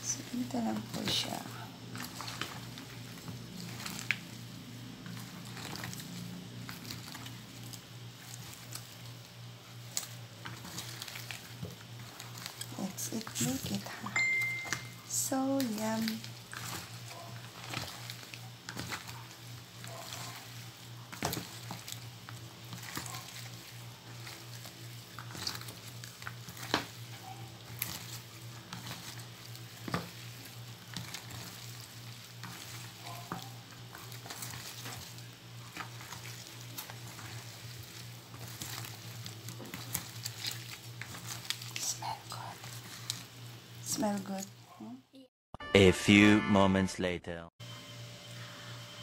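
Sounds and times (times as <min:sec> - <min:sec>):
steady low hum: 0:00.0 - 0:44.6
hands squishing wet cabbage leaves: 0:00.0 - 0:44.8.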